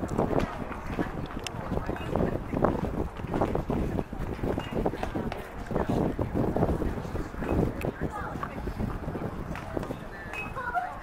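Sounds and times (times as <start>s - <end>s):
wind rumbling on microphone: 0.0s - 11.0s
people talking indistinctly: 0.1s - 11.0s.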